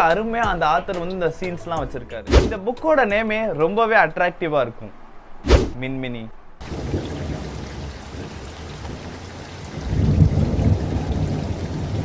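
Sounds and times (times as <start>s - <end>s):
rolling thunder: 6.6s - 12.0s
steady rain: 6.6s - 12.0s.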